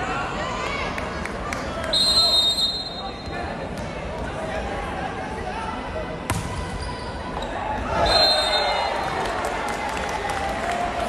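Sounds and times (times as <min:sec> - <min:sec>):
babble of crowd voices: 0:00.0 - 0:11.0.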